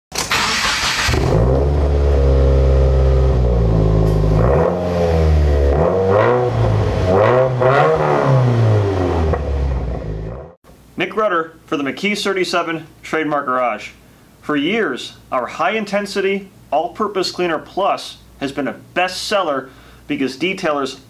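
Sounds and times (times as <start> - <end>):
car engine idling and revving: 0.3 - 10.6.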